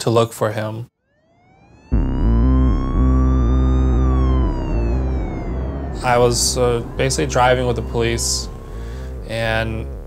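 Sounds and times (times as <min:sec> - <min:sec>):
police siren wail: 0:01.1 - 0:10.0
low dramatic music score: 0:01.9 - 0:10.0.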